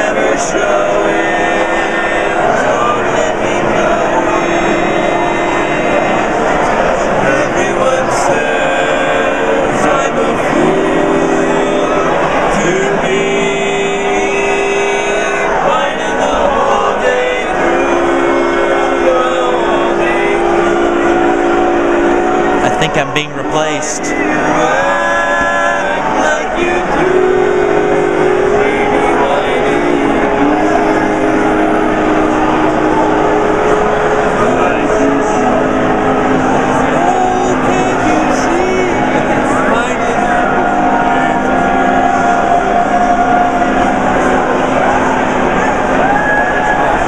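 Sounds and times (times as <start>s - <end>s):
crowd chatter: 0.0s - 47.0s
quartet singing close harmony: 0.0s - 47.0s.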